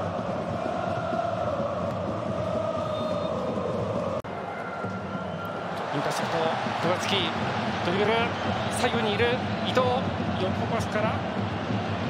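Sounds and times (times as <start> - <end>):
supporters chanting: 0.0 - 4.2
stadium crowd din: 0.0 - 12.0.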